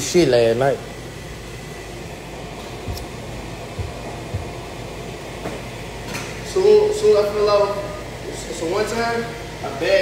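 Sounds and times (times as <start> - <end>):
room hum: 0.0 - 10.0
soft low thumps: 2.8 - 5.0.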